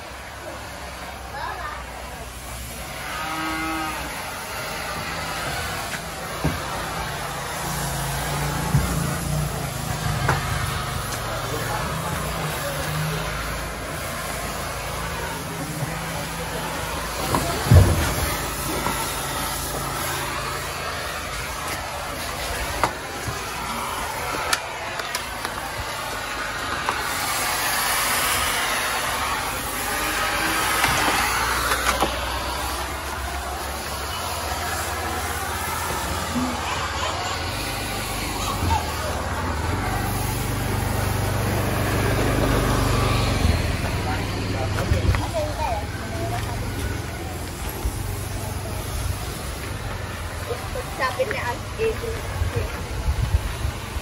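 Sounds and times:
fogging machine rushing: 0:00.0 - 0:54.0.

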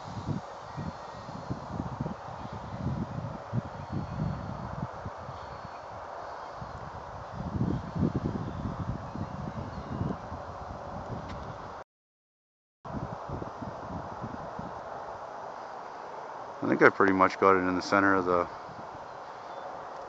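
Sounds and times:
outdoor hiss: 0:00.0 - 0:03.9, 0:14.4 - 0:20.0
wind buffeting microphone: 0:00.0 - 0:11.8, 0:12.9 - 0:20.0.

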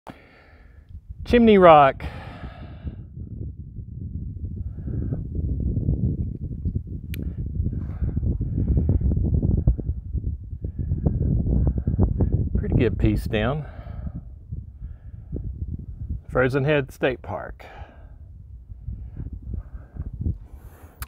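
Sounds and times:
wind buffeting microphone: 0:00.2 - 0:21.0.

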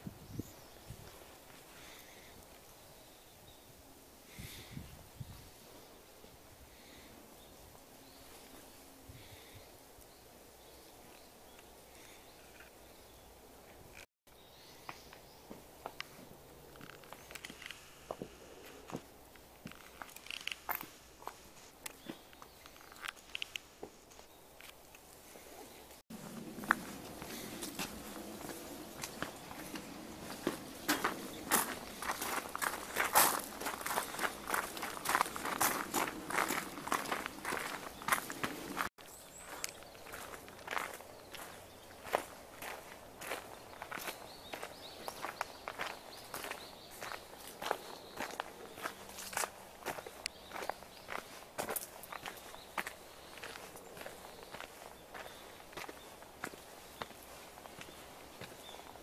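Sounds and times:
footsteps on gravel: 0:26.1 - 0:59.0.

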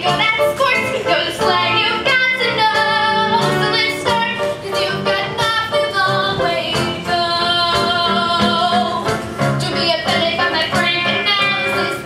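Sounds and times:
girl singing into microphone: 0:00.0 - 0:12.0
recorded backing music: 0:00.0 - 0:12.0.

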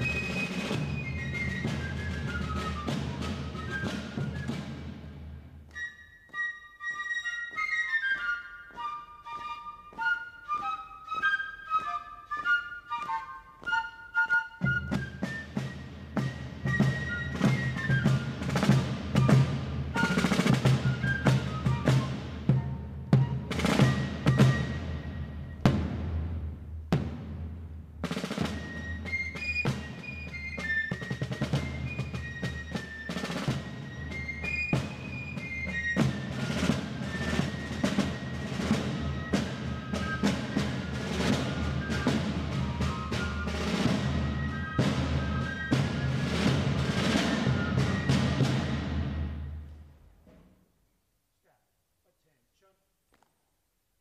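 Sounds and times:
rolling snare drums: 0:00.0 - 0:05.7, 0:07.6 - 0:50.6
shrill fife melody: 0:05.6 - 0:25.7, 0:28.1 - 0:48.7.

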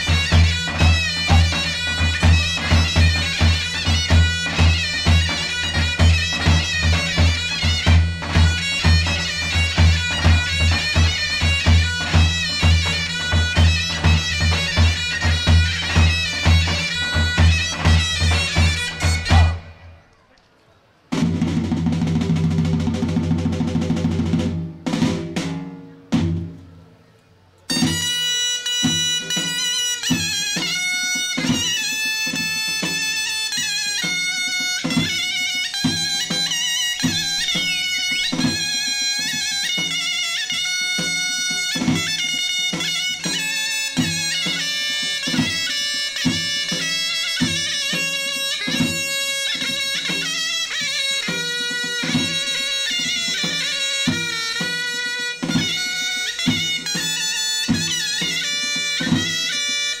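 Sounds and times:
regular drum beat: 0:00.0 - 0:19.8, 0:21.1 - 0:26.6, 0:27.7 - 1:00.0
shrill reed wind melody: 0:00.0 - 1:00.0.

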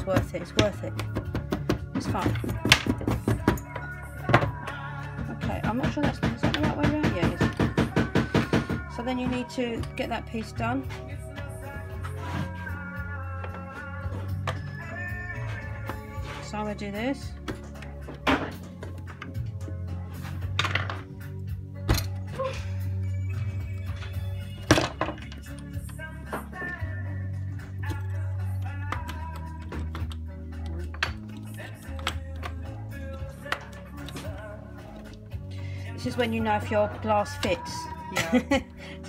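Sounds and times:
background music: 0:00.0 - 0:39.0.

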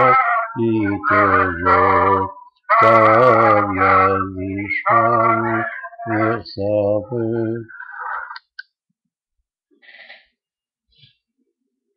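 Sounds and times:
man singing low note: 0:00.0 - 0:07.7.

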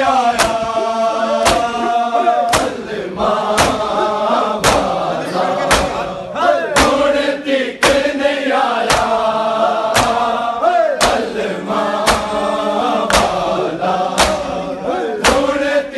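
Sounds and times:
men chanting a lament: 0:00.0 - 0:15.9
hands slapping chests: 0:00.3 - 0:00.8, 0:01.4 - 0:06.1, 0:06.8 - 0:07.1, 0:07.8 - 0:08.2, 0:08.8 - 0:09.3, 0:09.9 - 0:10.4, 0:11.0 - 0:11.4, 0:12.0 - 0:12.4, 0:13.0 - 0:13.5, 0:14.1 - 0:14.6, 0:15.2 - 0:15.6.

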